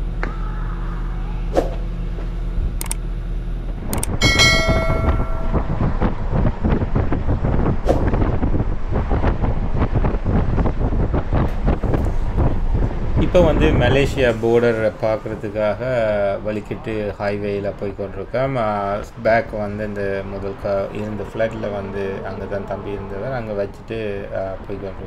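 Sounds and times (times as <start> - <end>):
vehicle humming in motion: 0.0 - 25.0
fluttering rumble: 0.9 - 16.2
brief ringing tone: 4.2 - 6.0.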